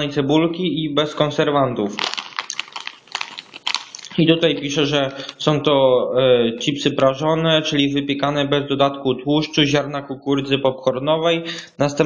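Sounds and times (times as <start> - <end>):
plastic snack bag crinkling: 1.8 - 5.5.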